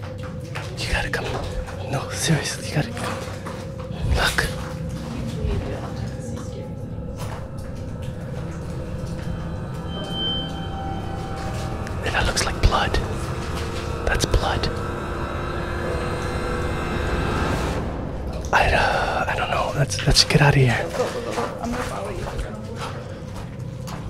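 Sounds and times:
eerie drone music: 0:00.0 - 0:24.0
steady low rumble: 0:00.0 - 0:24.0.

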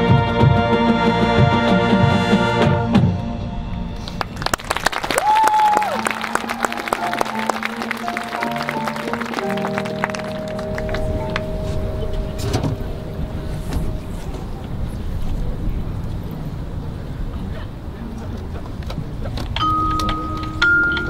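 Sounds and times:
soft held notes: 0:06.0 - 0:16.2.

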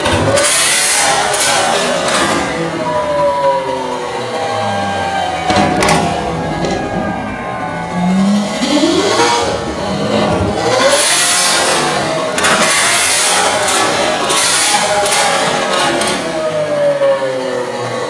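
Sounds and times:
sports car engine revving: 0:00.0 - 0:18.0.

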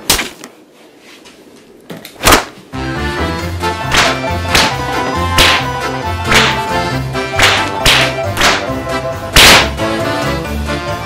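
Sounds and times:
background music: 0:02.7 - 0:11.0
fly swatter swishing swats: 0:05.4 - 0:08.7, 0:09.4 - 0:09.8.

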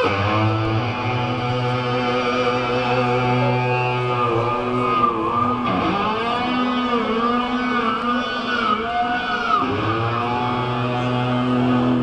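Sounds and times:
electric guitar bending notes: 0:00.0 - 0:12.0
live rock band playing: 0:00.0 - 0:12.0.

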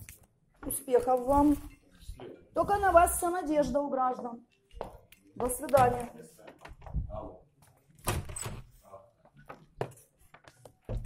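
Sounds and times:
wooden door clattering open: 0:08.0 - 0:08.7.

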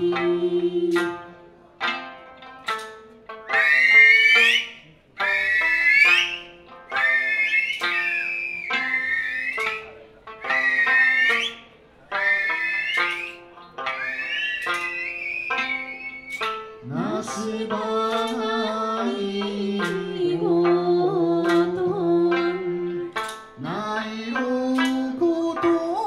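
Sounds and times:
plucked lute notes: 0:00.0 - 0:26.0.

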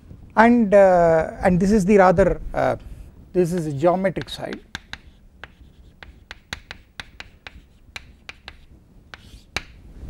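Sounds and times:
chalk tapping and scratching: 0:03.4 - 0:09.8.

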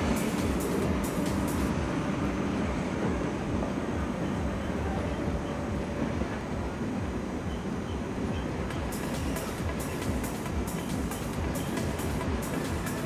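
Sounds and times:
electronic music with ticking beat: 0:00.0 - 0:01.9, 0:07.0 - 0:13.0
electric train rumbling over tracks: 0:00.0 - 0:13.0.

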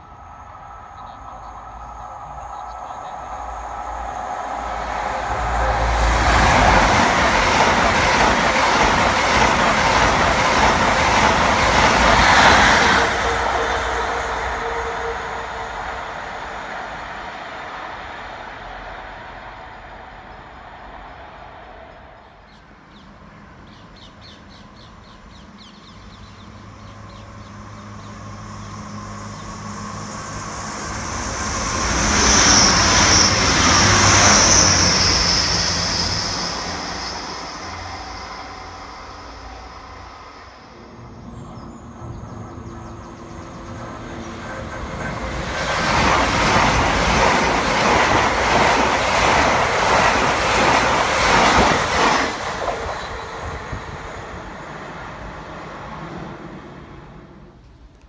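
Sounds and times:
high whine of passing train: 0:00.0 - 0:58.0
trains passing: 0:00.0 - 0:58.0
wheels rushing on rail: 0:00.0 - 0:58.0.

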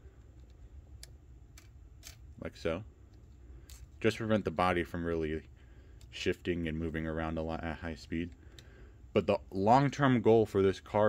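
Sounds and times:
low steady hum: 0:00.0 - 0:11.0
faint plastic clicks: 0:05.4 - 0:06.2, 0:08.2 - 0:08.8.

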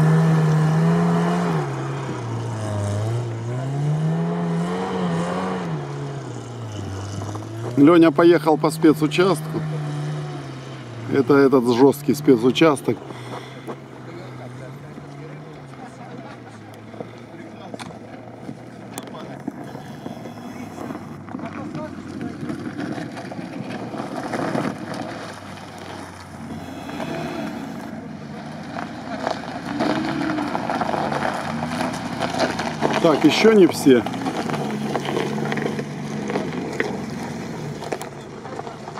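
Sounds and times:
vehicle engine running: 0:00.0 - 0:38.9.

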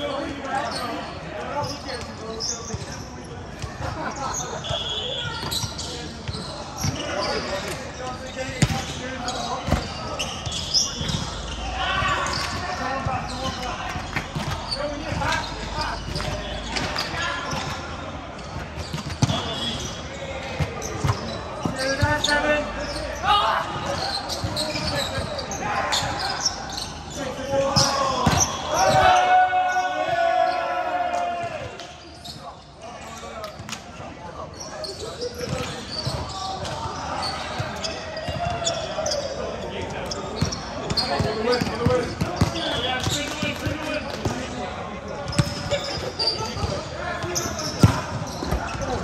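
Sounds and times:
basketball bouncing on court: 0:08.5 - 0:11.3, 0:12.1 - 0:22.2, 0:40.4 - 0:44.4, 0:45.2 - 0:49.0
players shouting in a hall: 0:08.9 - 0:18.4, 0:19.3 - 0:32.4.

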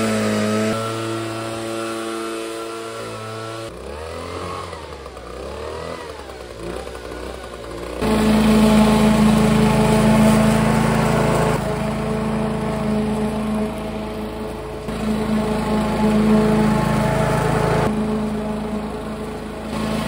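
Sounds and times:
engine wavering in pitch: 0:00.0 - 0:20.0
lawn mower engine running: 0:00.0 - 0:20.0.

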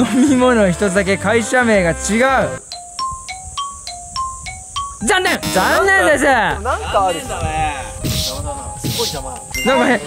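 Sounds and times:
plinking mallet jingle: 0:02.6 - 0:05.3, 0:09.2 - 0:10.0.

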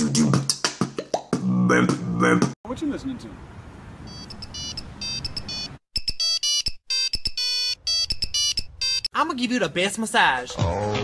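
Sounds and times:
phone ringtone beeping melody: 0:04.1 - 0:09.1.

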